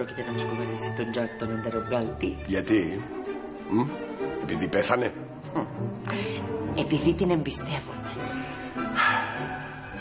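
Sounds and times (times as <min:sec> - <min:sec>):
music with sustained tones: 0:00.0 - 0:10.0.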